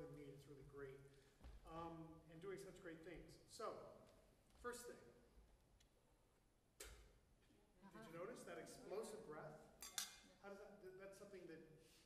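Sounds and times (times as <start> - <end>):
faint man's speech: 7.9 - 9.7.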